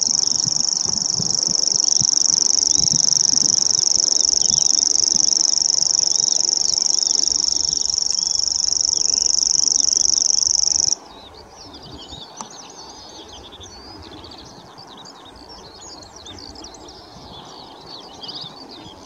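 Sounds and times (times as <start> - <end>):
high-pitched bird trill: 0.0 - 11.0.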